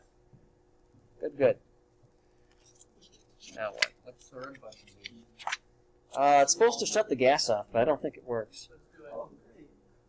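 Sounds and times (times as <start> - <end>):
paper pages rustling: 2.5 - 5.6
man speaking: 6.1 - 9.8.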